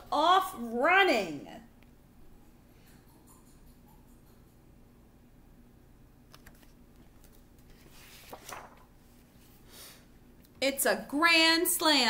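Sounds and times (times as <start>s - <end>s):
paper clicks: 6.3s - 8.8s
paper pages rustling: 6.3s - 9.6s.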